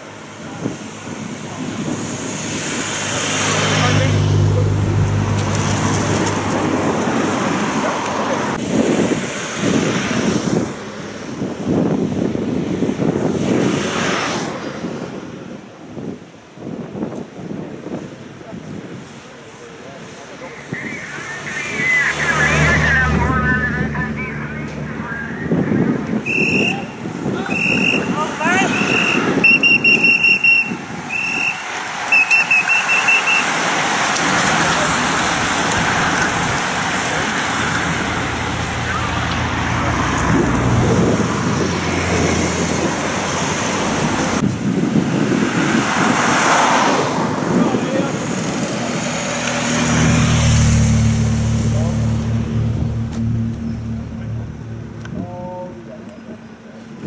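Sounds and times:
vehicle engine: 0:00.0 - 0:11.6, 0:19.2 - 0:44.6, 0:45.3 - 0:57.0
traffic and tyres rushing: 0:00.0 - 0:57.0
high-pitched whistle toots: 0:26.2 - 0:28.1, 0:28.7 - 0:33.5.

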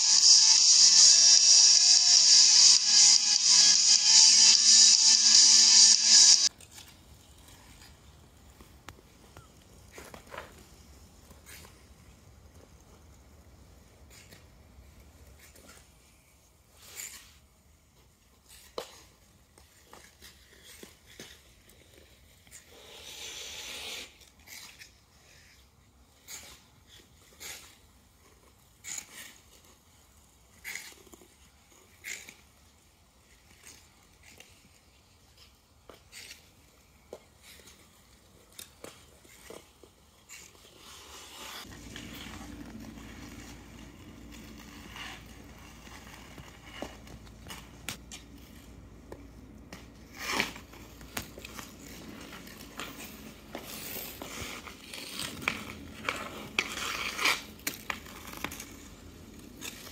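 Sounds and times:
skate blades scraping on ice: 0:00.0 - 0:59.9
hockey sticks clacking on ice: 0:28.6 - 0:59.9.

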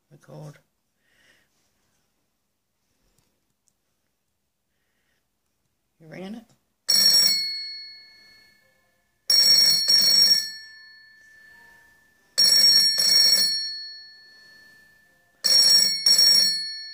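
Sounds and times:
telephone bell ringing: 0:06.9 - 0:16.9.

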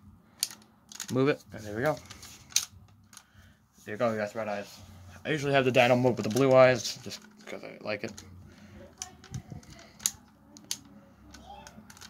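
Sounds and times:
plastic clicks and clacks: 0:06.2 - 0:12.0.

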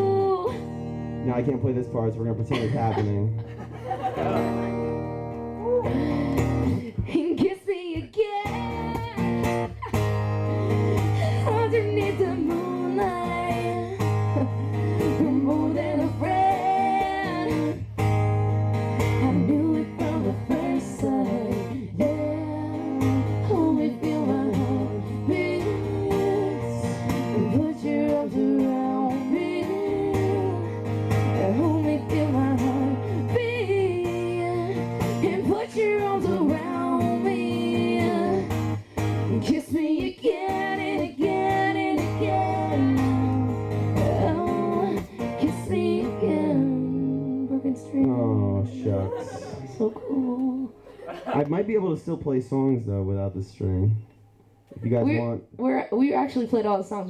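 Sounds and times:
woman singing: 0:00.0 - 0:00.8, 0:05.6 - 0:10.0, 0:11.0 - 0:17.9, 0:19.1 - 0:50.9
acoustic guitar: 0:00.0 - 0:57.0
man singing: 0:47.9 - 0:50.5.

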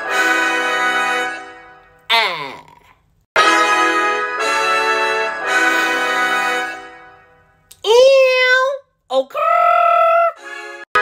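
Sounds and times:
orchestral brass chord: 0:00.0 - 0:01.8, 0:03.4 - 0:07.5, 0:10.4 - 0:11.0.

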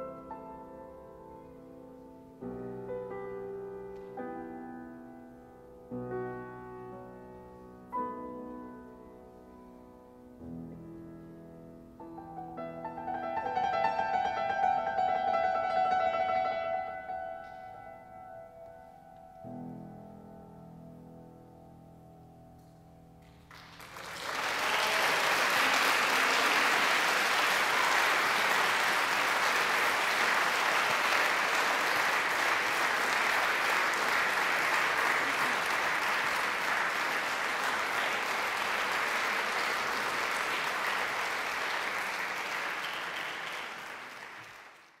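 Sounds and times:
audience applauding: 0:23.3 - 0:45.0.

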